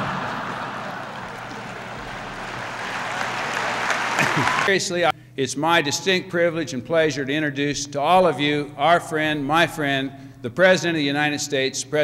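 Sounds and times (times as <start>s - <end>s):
audience laughing: 0.0s - 4.7s
audience applauding: 0.0s - 4.8s.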